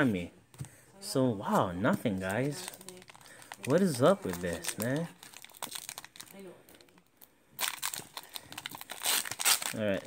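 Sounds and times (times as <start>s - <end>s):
foil wrapper crinkling: 2.0s - 7.0s, 7.6s - 10.0s.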